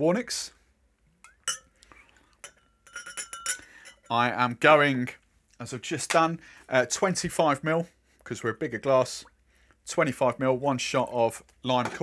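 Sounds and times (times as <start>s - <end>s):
metal jigger clinking on glass: 1.3s - 1.8s, 2.4s - 4.1s.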